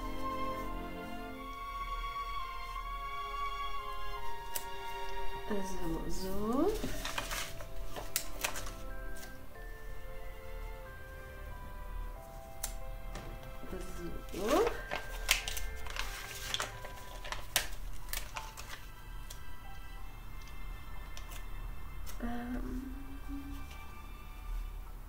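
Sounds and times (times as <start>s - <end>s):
soft background music: 0.0s - 25.0s
paper sticker sheets rustling: 5.6s - 9.4s, 12.2s - 19.6s.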